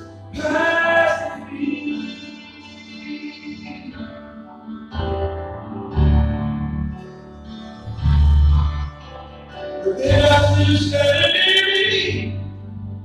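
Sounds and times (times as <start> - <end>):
gospel instrumental music: 0.0 - 13.0
deep bass notes: 5.0 - 13.0.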